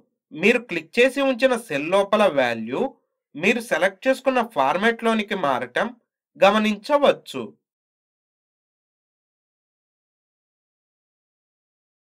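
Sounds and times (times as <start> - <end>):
narrator talking: 0.3 - 7.6.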